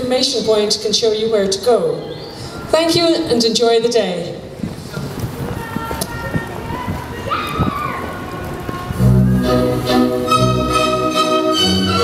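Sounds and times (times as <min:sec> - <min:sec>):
crowd ambience: 0:00.0 - 0:12.0.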